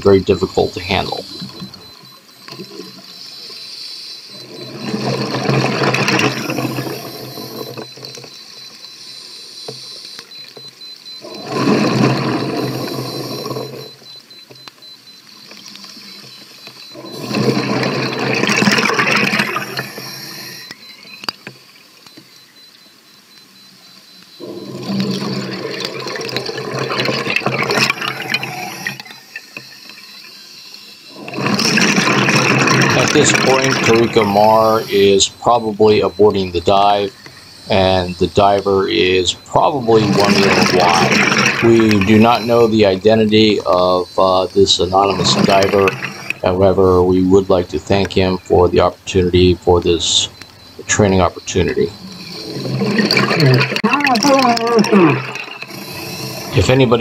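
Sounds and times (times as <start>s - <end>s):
exhaled bubbles rushing underwater: 16.9s - 20.7s, 24.4s - 29.2s, 31.1s - 48.4s, 50.8s - 57.0s
scuba regulator hiss: 55.7s - 56.6s.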